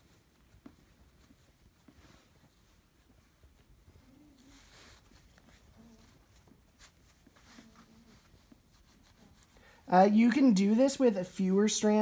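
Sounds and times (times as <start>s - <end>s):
rustle of cord pulled through: 0.0s - 9.9s.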